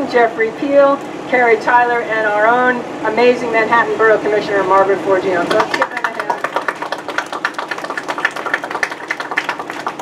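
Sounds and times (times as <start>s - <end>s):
people applauding: 5.5s - 10.0s.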